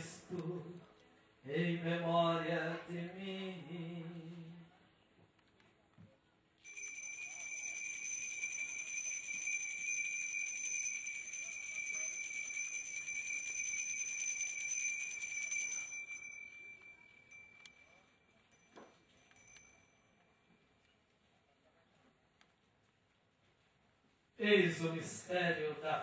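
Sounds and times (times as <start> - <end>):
altar bells ringing: 6.6 - 20.7.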